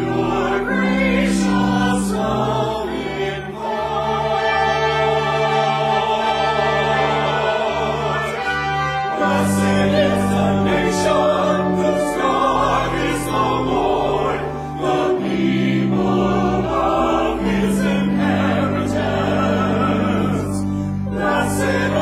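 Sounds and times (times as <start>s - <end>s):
choir singing in harmony: 0.0s - 22.0s
organ holding low notes: 0.0s - 22.0s.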